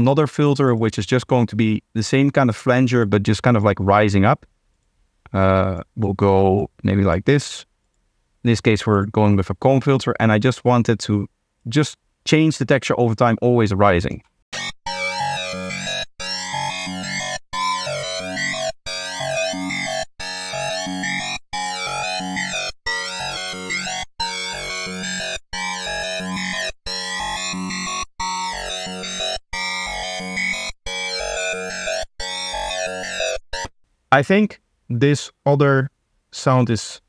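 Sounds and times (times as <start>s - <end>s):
psytrance loop: 14.5s - 33.7s.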